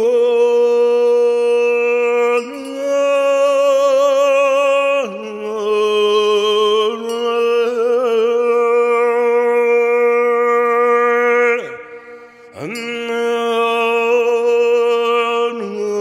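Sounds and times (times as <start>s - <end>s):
sustained vocal chant: 0.0s - 16.0s.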